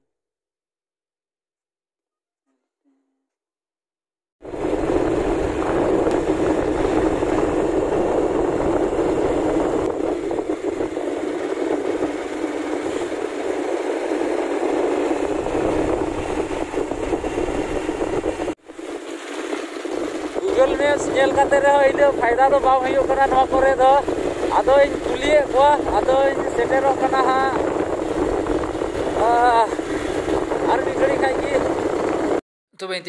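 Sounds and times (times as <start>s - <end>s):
motorcycle engine and wind: 4.4s - 32.4s.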